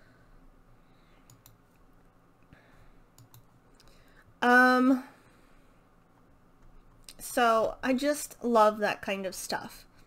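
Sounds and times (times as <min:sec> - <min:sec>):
faint short clicks: 0:01.2 - 0:01.6.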